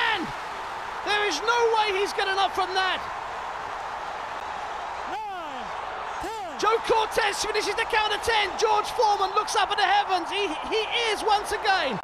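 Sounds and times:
arena crowd roaring: 0.0 - 12.0
man shouting: 5.1 - 12.0.

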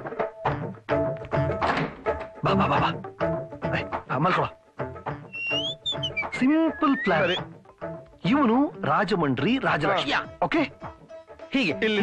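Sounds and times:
film background music: 0.0 - 12.0.

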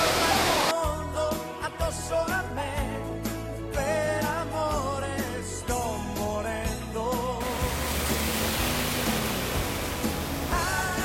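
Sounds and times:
faint pop song: 0.0 - 11.0
tyres rushing through water: 7.4 - 11.0.

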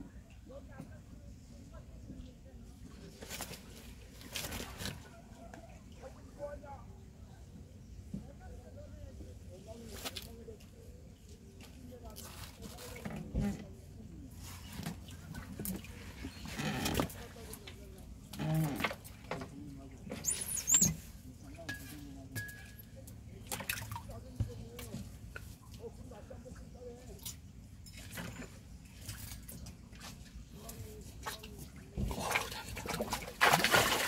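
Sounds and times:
fish splashing in water: 32.0 - 34.0.

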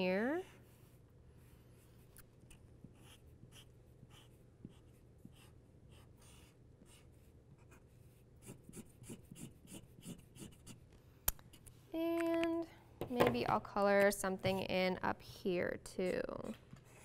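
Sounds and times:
marker scratching on paper: 0.6 - 10.8.

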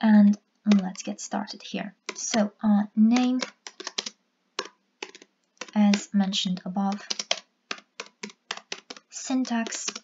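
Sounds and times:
typing on computer keyboard: 0.7 - 6.1, 6.9 - 10.0.

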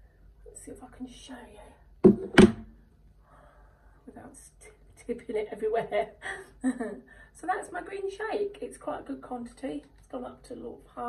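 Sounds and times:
hard plastic knocks on surface: 2.0 - 2.7.

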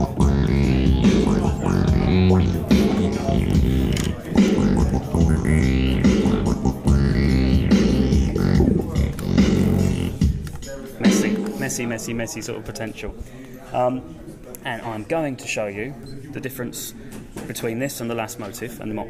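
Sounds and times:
synthesizer arpeggio groove: 0.0 - 10.4.

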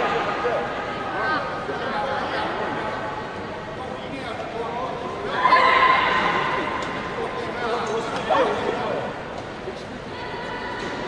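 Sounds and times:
background talk: 0.0 - 11.0.

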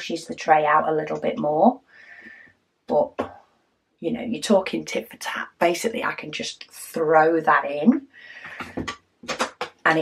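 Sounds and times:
plastic trays clicking and knocking: 8.5 - 9.8.

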